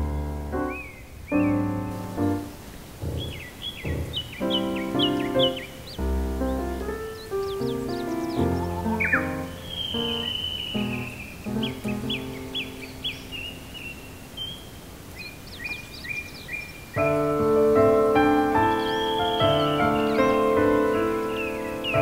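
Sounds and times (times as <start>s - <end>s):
slow gentle piano melody: 0.0s - 14.3s, 17.0s - 22.0s
bird chirps: 0.5s - 22.0s
long drawn-out bird call: 0.6s - 22.0s.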